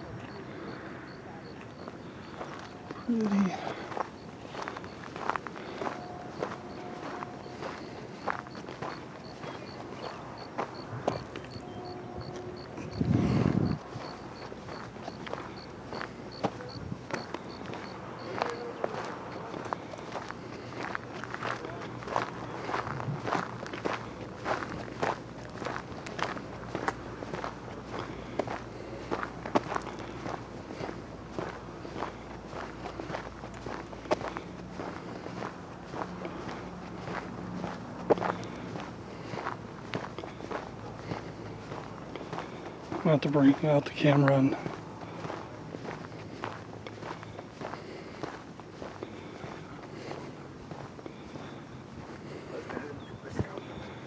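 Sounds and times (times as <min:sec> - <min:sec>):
footsteps crunching on gravel: 0:01.4 - 0:54.0.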